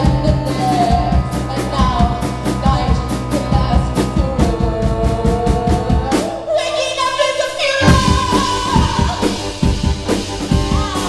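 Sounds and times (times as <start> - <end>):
bass: 0.0 - 6.4, 7.8 - 11.0
woman singing into a microphone: 0.0 - 9.6
keyboards: 0.0 - 11.0
steady drum beat: 7.8 - 11.0.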